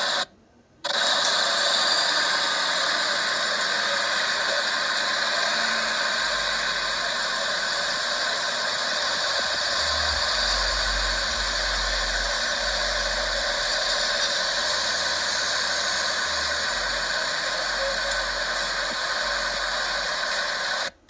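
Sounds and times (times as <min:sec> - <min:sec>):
road traffic hiss: 0:00.0 - 0:21.0.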